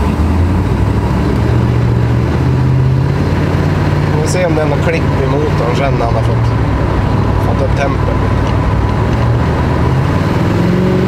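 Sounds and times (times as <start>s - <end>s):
vee eight engine running rough: 0.0s - 11.0s.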